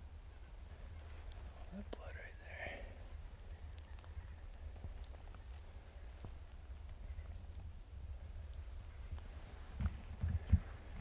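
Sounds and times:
leaves and twigs crackling: 0.0s - 11.0s.

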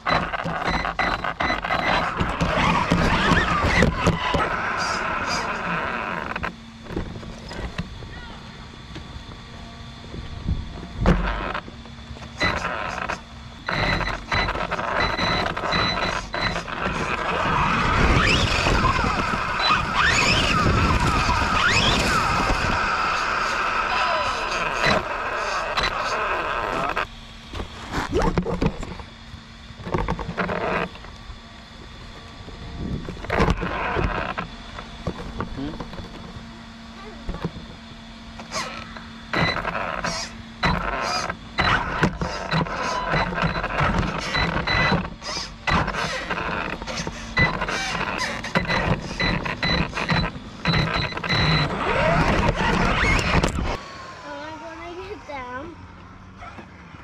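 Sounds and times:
electric motor whine: 0.0s - 57.0s.

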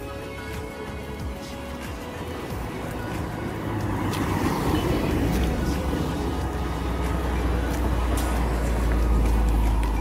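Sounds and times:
background music: 0.0s - 10.0s
vehicles passing: 0.0s - 10.0s.

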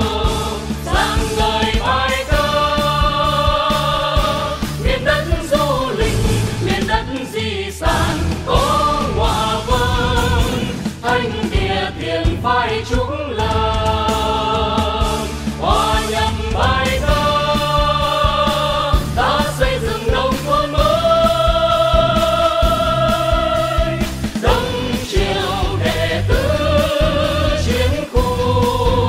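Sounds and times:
group of voices singing: 0.0s - 29.0s.

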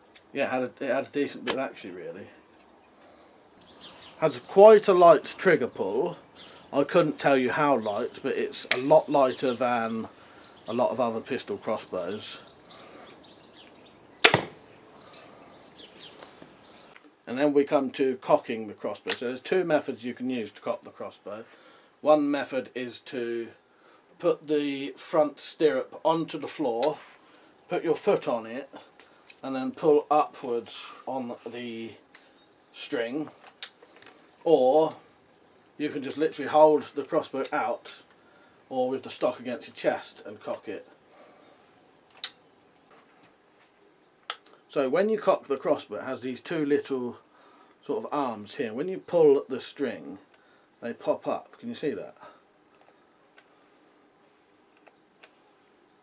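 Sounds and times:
crossbow firing crack: 14.2s - 14.6s.

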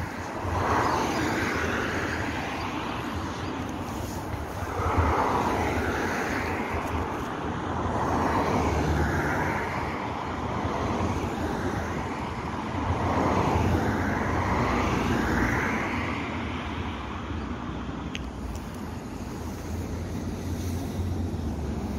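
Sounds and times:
cars passing: 0.0s - 21.9s.

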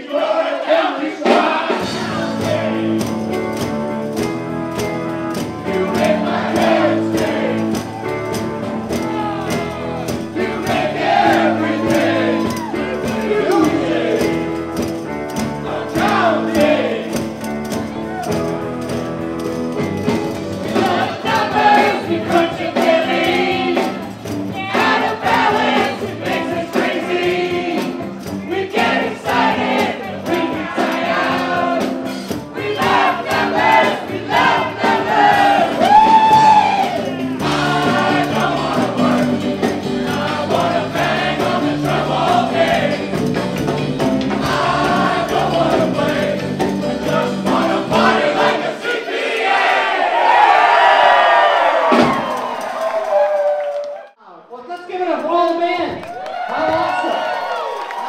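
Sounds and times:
group of voices singing: 0.0s - 3.4s, 5.3s - 18.4s, 20.3s - 51.2s
rock band playing: 1.4s - 48.8s
electric guitar: 1.8s - 22.0s, 35.3s - 48.1s
tambourines shaking: 1.9s - 48.6s.

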